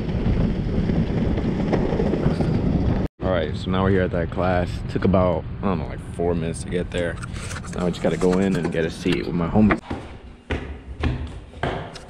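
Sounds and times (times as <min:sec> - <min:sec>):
longboard wheels rumbling on concrete: 0:00.0 - 0:04.5
wind buffeting microphone: 0:00.0 - 0:09.8.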